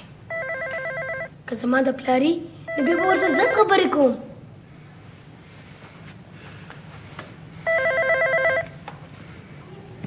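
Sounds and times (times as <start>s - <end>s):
telephone ringer trilling: 0.3s - 1.3s, 2.7s - 3.8s, 7.7s - 8.8s.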